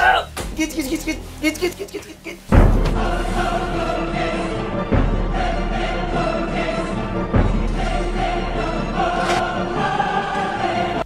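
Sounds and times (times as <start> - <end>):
choir holding long notes: 2.9 - 11.0.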